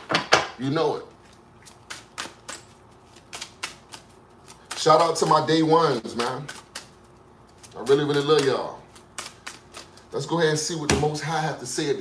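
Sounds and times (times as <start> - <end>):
cards being shuffled: 1.2 - 10.2.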